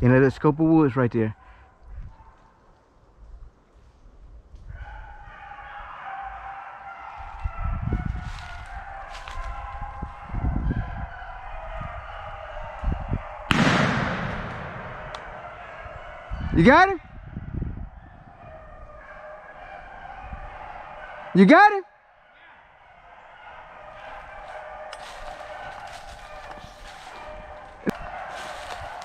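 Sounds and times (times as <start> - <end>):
hounds baying: 4.7 - 29.0
shotgun shot: 13.5 - 15.6.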